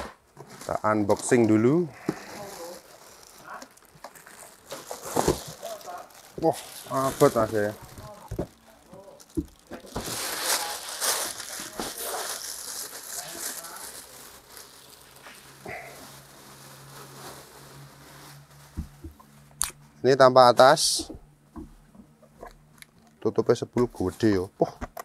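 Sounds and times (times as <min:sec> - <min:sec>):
plastic bag crinkling: 0:00.6 - 0:19.4.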